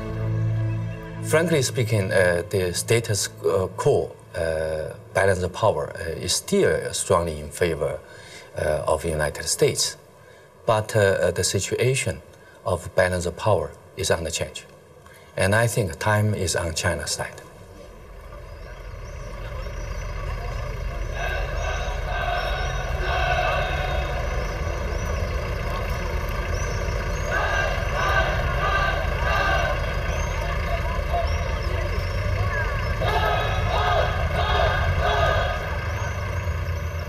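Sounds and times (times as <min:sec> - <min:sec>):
traffic rumble: 0:00.0 - 0:37.0
unintelligible voices: 0:17.2 - 0:36.5.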